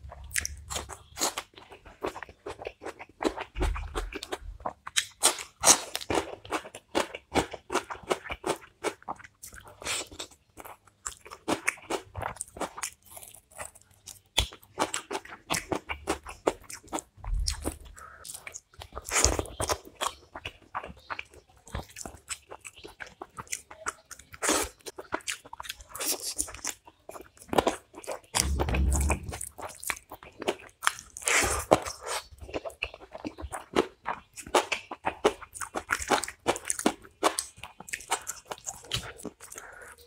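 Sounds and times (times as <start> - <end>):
chewing and lip smacking: 0.0 - 40.0
dull low thumps: 28.4 - 29.5.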